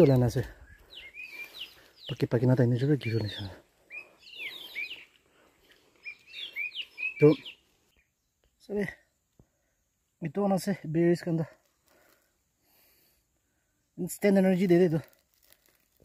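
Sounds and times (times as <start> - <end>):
man speaking: 0.0 - 0.6, 2.1 - 3.6, 7.2 - 7.4, 10.2 - 11.6, 14.0 - 15.1
small birds chirping: 0.0 - 15.7.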